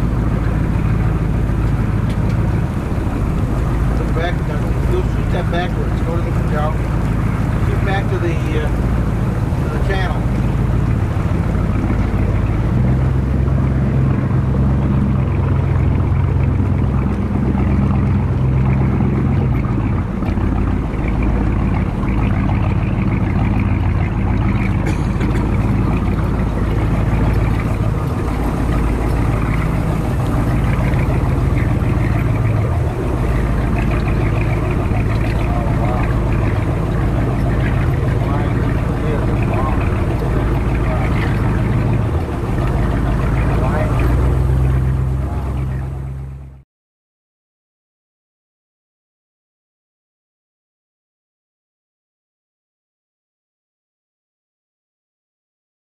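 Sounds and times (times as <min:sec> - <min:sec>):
motorboat engine humming: 0:00.0 - 0:46.6
water and wind noise: 0:00.0 - 0:46.6.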